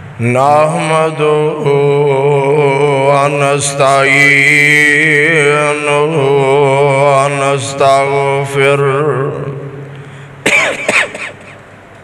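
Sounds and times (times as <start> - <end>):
man clearing his throat: 10.4 - 11.6
man coughing: 10.4 - 11.6.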